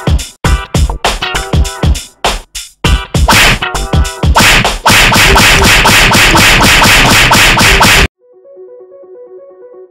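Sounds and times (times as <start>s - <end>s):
comic slap and punch effects: 3.3s - 3.7s, 4.4s - 8.1s.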